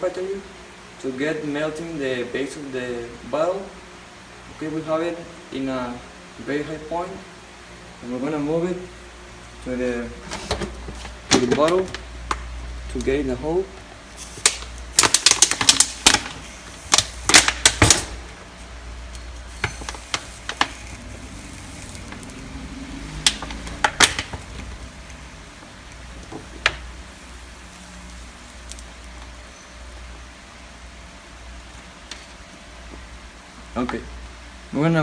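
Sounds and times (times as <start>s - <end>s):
plastic bottle crackling and clicking: 14.4s - 18.1s.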